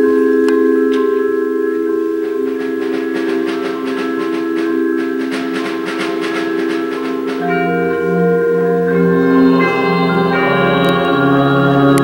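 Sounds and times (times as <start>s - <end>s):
held ringing chord: 0.0s - 12.0s
rapid struck percussion notes: 0.9s - 11.6s.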